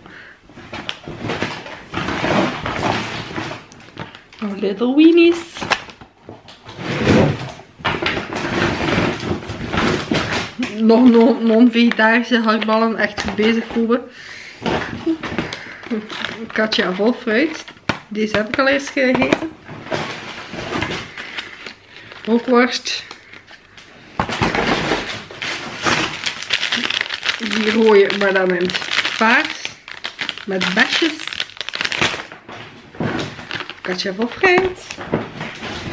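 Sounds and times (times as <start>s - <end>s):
plastic bag rustling: 0.0s - 35.9s
plastic packaging crinkling: 0.6s - 13.9s, 14.6s - 35.9s.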